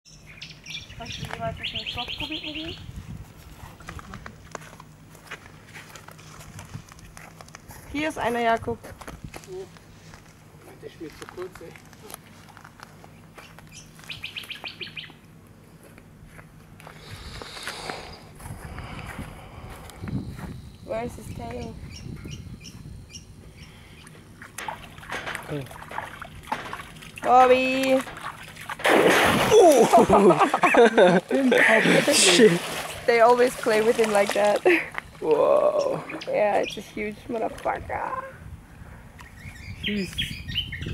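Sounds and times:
low steady hum: 0:00.1 - 0:40.9
faint footsteps: 0:02.9 - 0:14.2, 0:15.7 - 0:23.0.

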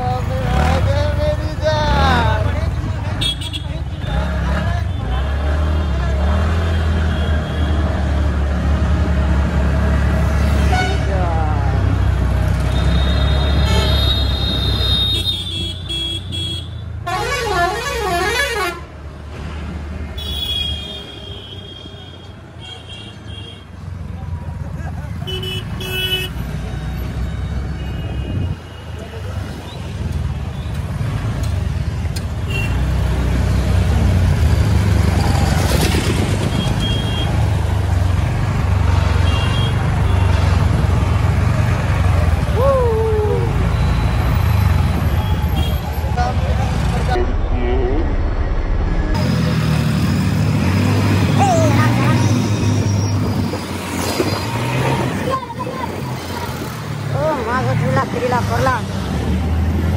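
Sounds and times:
low engine rumble and wind: 0:00.0 - 0:07.0, 0:26.4 - 0:59.9
town traffic: 0:00.0 - 0:59.9
vehicle horns honking: 0:12.7 - 0:18.9, 0:25.2 - 0:26.4.

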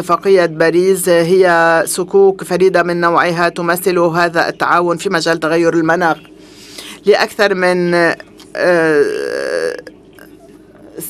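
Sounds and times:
person's drawn-out hesitation sound: 0:08.5 - 0:10.4.

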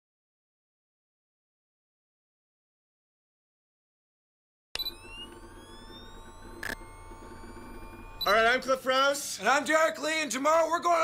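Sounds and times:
electronic click: 0:04.8 - 0:08.8
rising electronic whine: 0:04.8 - 0:10.0
low electronic hum: 0:04.8 - 0:11.0.

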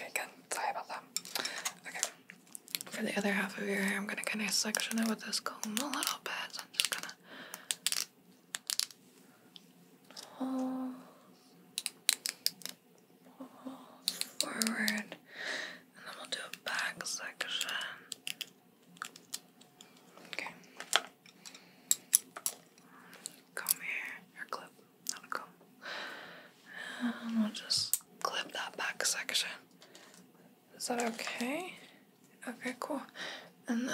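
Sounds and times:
breathy whispering: 0:13.3 - 0:18.1, 0:22.8 - 0:25.6.

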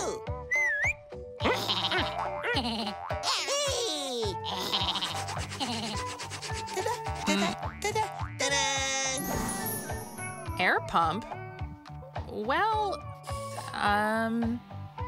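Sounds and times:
light background music with beat: 0:00.0 - 0:15.0
squeaky cartoon character voices: 0:01.4 - 0:06.1, 0:06.7 - 0:09.5.

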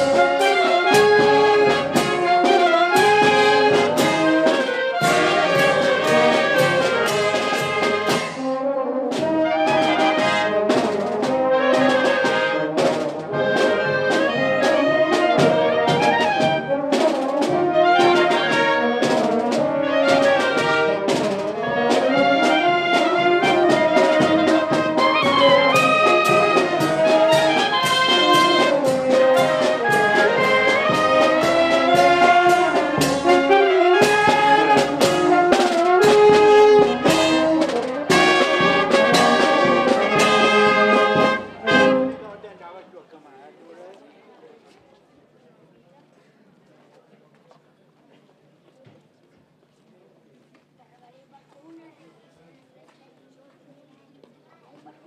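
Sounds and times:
drum strokes: 0:00.0 - 0:42.3
wind band playing a tune: 0:00.0 - 0:42.5.

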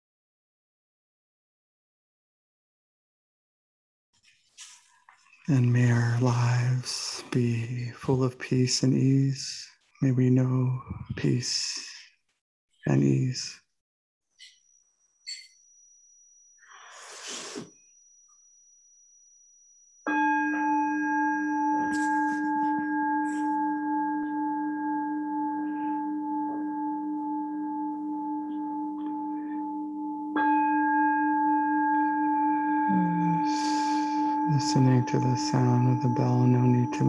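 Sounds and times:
meditation bell ringing: 0:05.5 - 0:09.2, 0:17.8 - 0:37.0.

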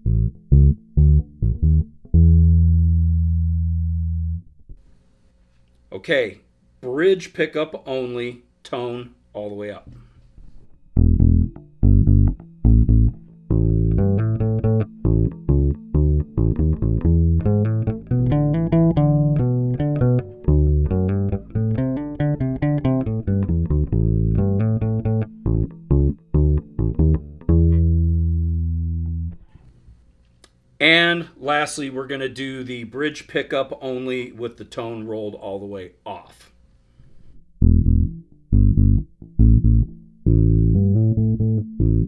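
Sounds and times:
electric bass riff through amp: 0:00.0 - 0:04.8, 0:10.9 - 0:29.5, 0:37.6 - 0:42.0.

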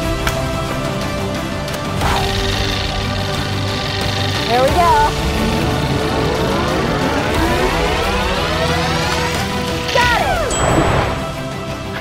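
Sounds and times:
low rumble: 0:03.1 - 0:09.9
tones sweeping upward: 0:04.4 - 0:11.2.

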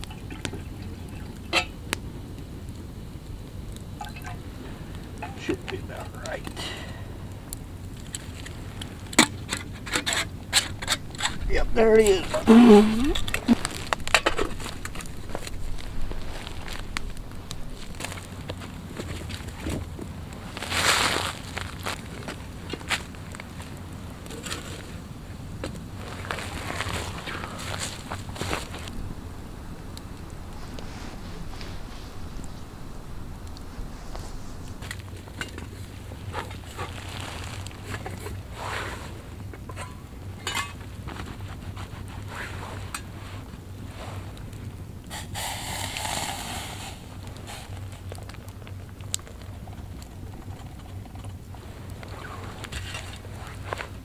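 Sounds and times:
campfire crackling and popping: 0:00.0 - 0:54.0
low wind rumble: 0:00.0 - 0:54.0
burst of noise: 0:45.0 - 0:47.9.

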